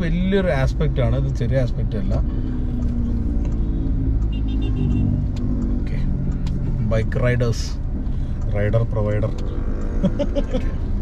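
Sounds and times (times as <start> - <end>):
diesel engine hum: 0.0 - 11.0
road rumble: 0.0 - 11.0.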